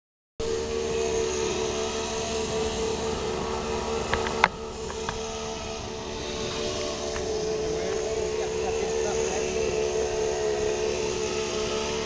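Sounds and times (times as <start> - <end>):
chainsaw engine running: 0.4 - 12.0.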